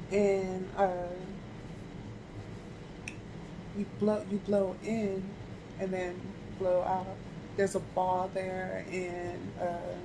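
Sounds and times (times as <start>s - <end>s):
low steady hum: 0.0s - 10.0s
person speaking: 0.1s - 1.4s, 3.8s - 10.0s.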